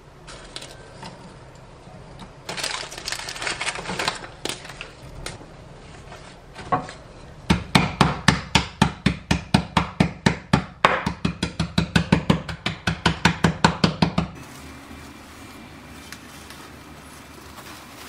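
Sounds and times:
rolling pin pounding on table: 0:07.5 - 0:14.4.

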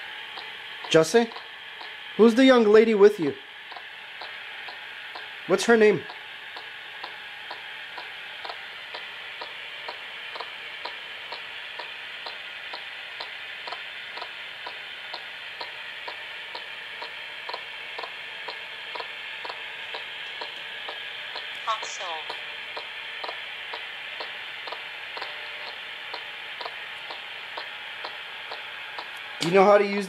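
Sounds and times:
radio static: 0:21.7 - 0:22.3.

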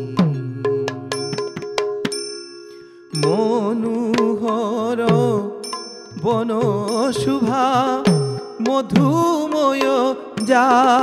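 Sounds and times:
held tone: 0:01.0 - 0:03.8, 0:05.6 - 0:09.3
small hand cymbals ringing: 0:01.2 - 0:03.6, 0:05.6 - 0:08.7.

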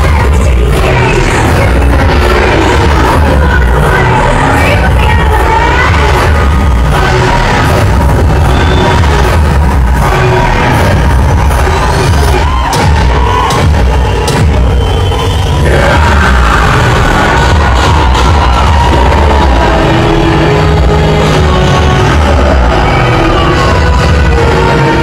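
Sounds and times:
bass-heavy film soundtrack: 0:00.0 - 0:25.0
audience cheering: 0:05.4 - 0:25.0.

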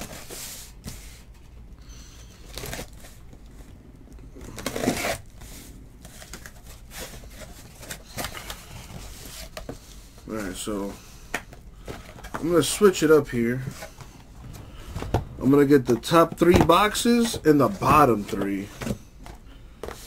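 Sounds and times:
cardboard and tape ripping: 0:04.5 - 0:05.2.

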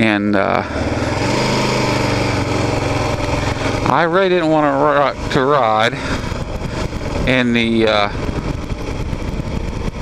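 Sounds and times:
motorcycle engine running: 0:00.0 - 0:10.0
wind on microphone: 0:06.0 - 0:10.0.

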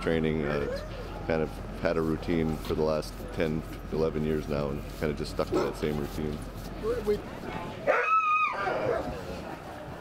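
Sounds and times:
dog yelping: 0:07.9 - 0:09.0.

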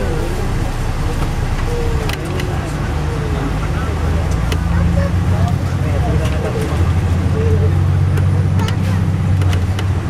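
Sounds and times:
bus engine and road drone: 0:00.0 - 0:10.0.

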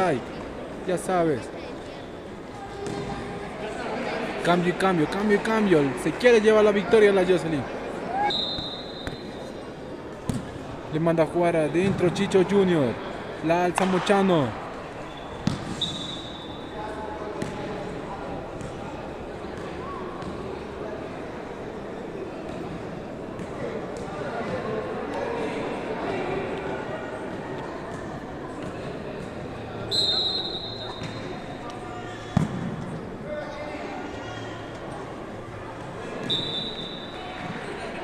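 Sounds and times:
high steady whistle: 0:08.2 - 0:09.4, 0:15.1 - 0:16.7, 0:29.9 - 0:31.0, 0:36.3 - 0:37.2.

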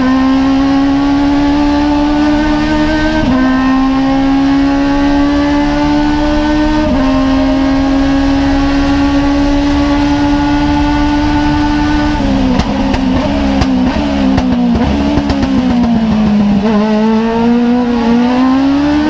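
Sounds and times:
engine revving at full throttle: 0:00.0 - 0:19.0.

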